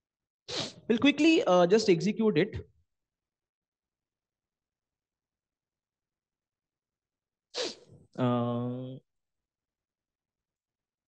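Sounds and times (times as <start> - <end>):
person sneezing: 0.5 - 0.9, 7.6 - 7.9.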